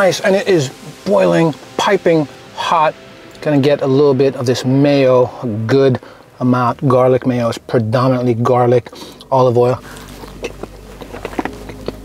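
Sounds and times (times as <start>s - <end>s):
low hum: 0.0s - 12.0s
man chewing food: 9.1s - 12.0s.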